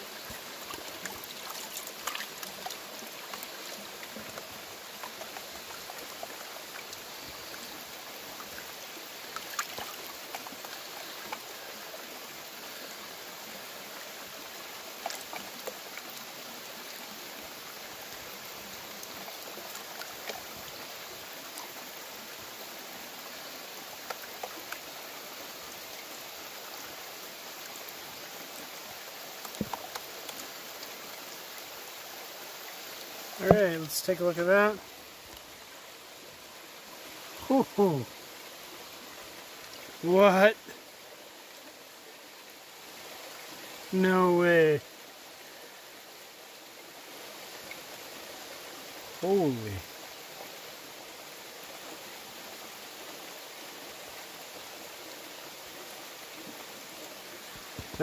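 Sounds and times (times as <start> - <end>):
creek water running: 0.0 - 58.0.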